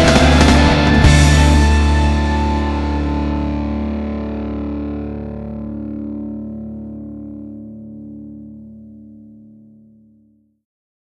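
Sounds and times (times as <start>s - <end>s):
distorted electric guitar chord: 0.0s - 10.2s.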